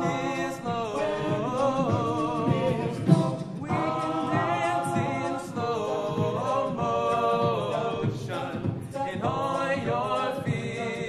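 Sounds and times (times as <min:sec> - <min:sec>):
men's a cappella group singing: 0:00.0 - 0:11.0
vocal percussion kick thumps: 0:00.0 - 0:11.0.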